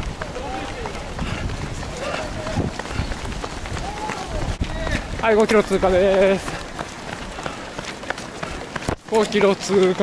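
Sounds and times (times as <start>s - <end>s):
outdoor noise rush: 0.0s - 10.0s
running footsteps on asphalt: 0.0s - 10.0s.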